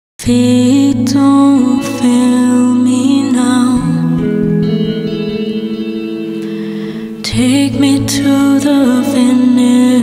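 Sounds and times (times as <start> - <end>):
electric guitar with reverb: 0.2 - 10.0.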